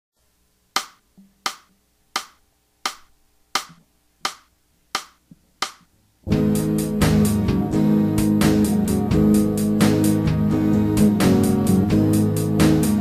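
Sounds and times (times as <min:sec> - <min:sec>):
sharp percussive clicks: 0:00.7 - 0:05.9.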